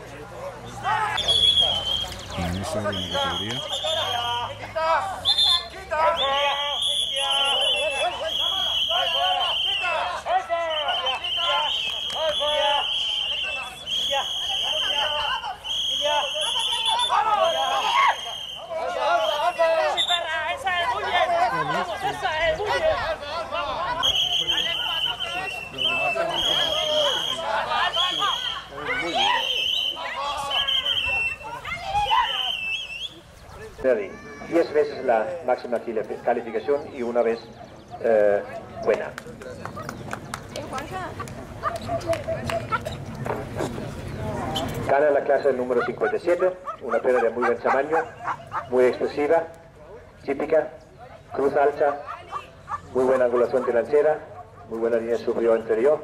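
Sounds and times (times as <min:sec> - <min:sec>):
many voices calling out: 0:00.0 - 0:35.4
high-pitched whistle blasts: 0:01.2 - 0:02.2, 0:10.7 - 0:20.3, 0:24.0 - 0:28.6, 0:29.2 - 0:33.2
dogs whining and yipping: 0:45.8 - 0:48.8.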